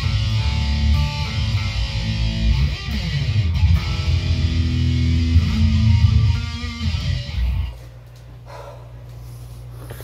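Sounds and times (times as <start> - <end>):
guitar amplifier hum: 0.0 - 10.0
short breath: 8.4 - 10.0.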